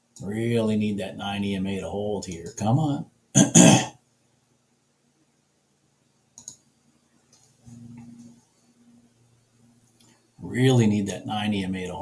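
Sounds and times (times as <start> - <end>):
man clearing his throat: 3.4 - 4.0
faint short clicks: 6.4 - 6.6.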